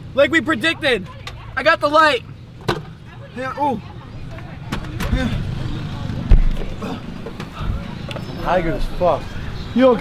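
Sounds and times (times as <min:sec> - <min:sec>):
motor vehicle rumbling: 0:00.0 - 0:10.0.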